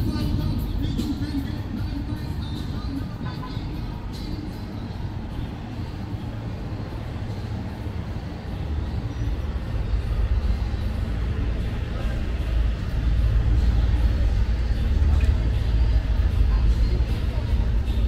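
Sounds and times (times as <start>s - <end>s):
low traffic rumble: 0.0s - 18.0s
passing vehicles: 0.0s - 18.0s.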